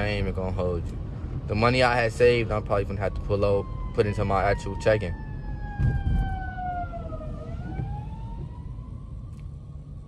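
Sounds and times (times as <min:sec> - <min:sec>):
engine and road rumble: 0:00.0 - 0:10.0
emergency siren wailing: 0:01.9 - 0:10.0.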